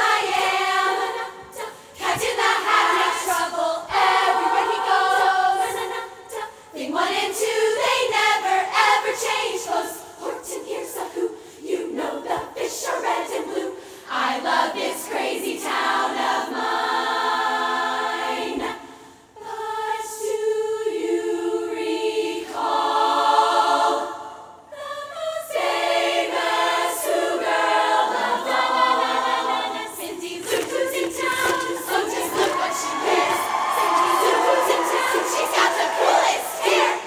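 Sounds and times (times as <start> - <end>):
women's choir singing: 0.0 - 37.0.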